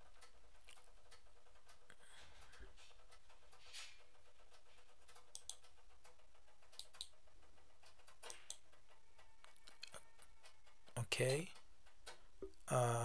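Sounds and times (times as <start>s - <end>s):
quiet room hiss: 0.0s - 13.0s.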